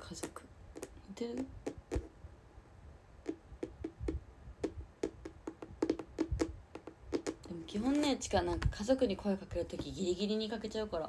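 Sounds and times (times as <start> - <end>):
fingertips tapping touchscreen: 0.2 - 2.1, 3.2 - 8.7.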